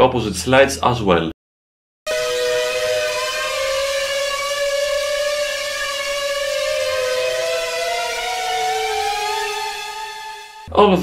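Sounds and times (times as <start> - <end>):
gliding synth notes: 2.1 - 10.7.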